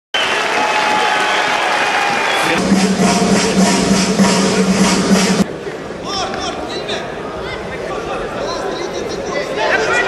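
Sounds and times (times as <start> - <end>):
audience applauding: 0.2 - 2.6
low droning tone with pulsing beat: 2.6 - 5.4.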